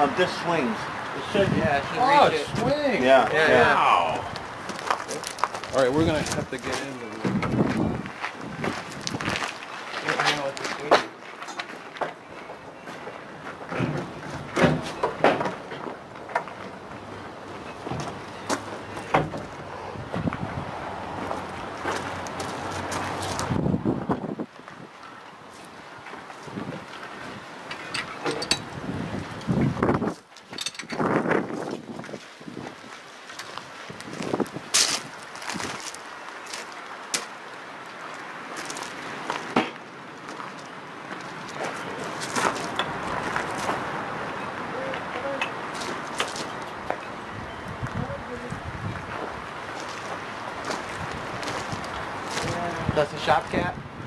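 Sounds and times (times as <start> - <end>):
clicks and knocks of metal parts: 27.7 - 28.7, 30.4 - 31.1.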